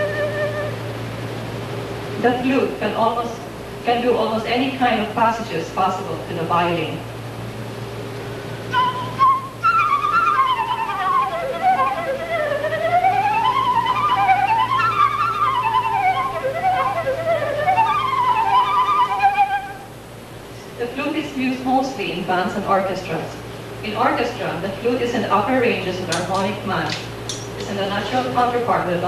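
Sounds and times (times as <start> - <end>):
flute playing rapid runs: 0.0 - 1.0, 8.7 - 19.9
low electrical hum: 0.0 - 29.0.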